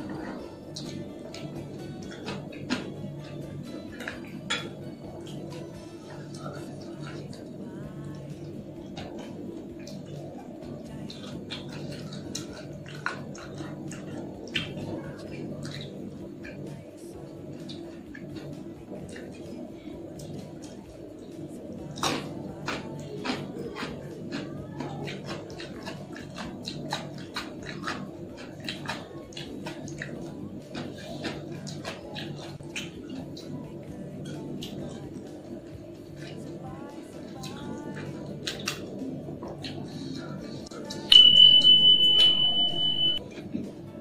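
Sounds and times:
wet chewing and lip-smacking: 0:00.0 - 0:36.6, 0:37.2 - 0:41.0
steady low hum: 0:00.0 - 0:44.0
high-pitched electronic beep: 0:41.1 - 0:43.2.

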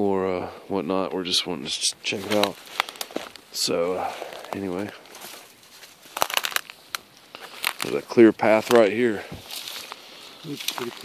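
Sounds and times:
frosty grass crunching underfoot: 0:01.6 - 0:11.0.

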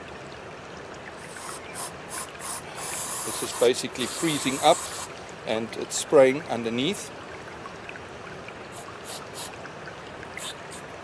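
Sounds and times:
running water rushing: 0:00.0 - 0:11.0
spray can hissing: 0:01.3 - 0:05.1.

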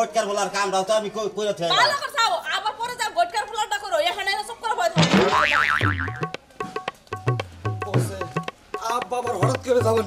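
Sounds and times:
wobbling warbling tone: 0:05.0 - 0:06.4.

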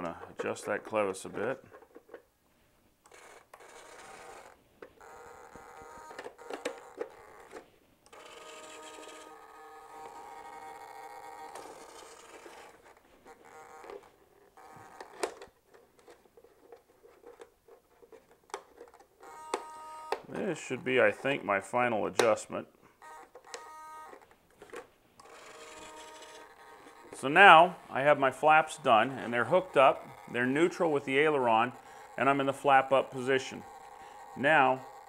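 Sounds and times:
servos faintly whining: 0:03.0 - 0:15.3, 0:25.2 - 0:35.0.

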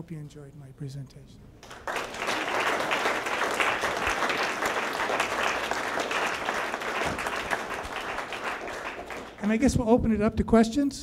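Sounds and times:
audience applauding: 0:01.6 - 0:09.6.

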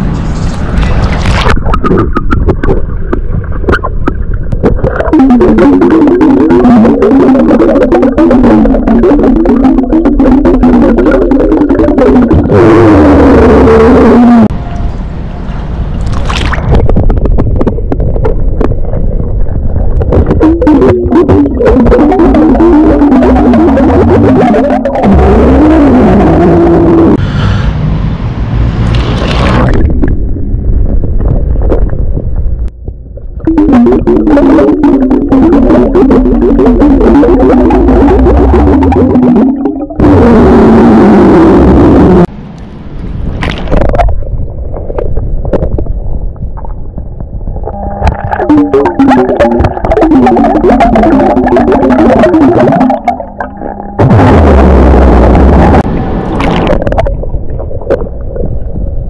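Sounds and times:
rushing noise: 0:00.0 - 0:05.1, 0:09.4 - 0:21.9, 0:25.0 - 0:59.0
low burps underwater: 0:20.0 - 0:27.2, 0:47.7 - 0:55.7.

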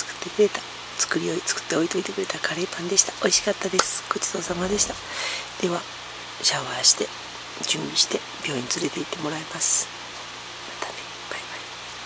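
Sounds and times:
room noise hiss: 0:00.0 - 0:12.0
low hum: 0:04.4 - 0:05.6.

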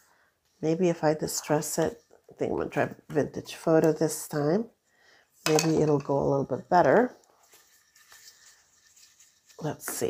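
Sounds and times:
person speaking: 0:05.5 - 0:07.2, 0:09.6 - 0:10.0.

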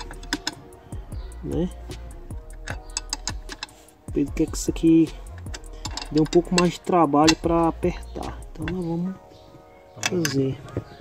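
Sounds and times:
hand ratchet clicking: 0:00.0 - 0:00.6, 0:02.4 - 0:03.8, 0:04.8 - 0:08.9.

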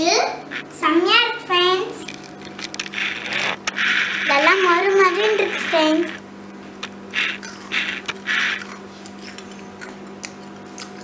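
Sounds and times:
steady low hum: 0:00.0 - 0:11.0
fried food crackling: 0:02.0 - 0:11.0.

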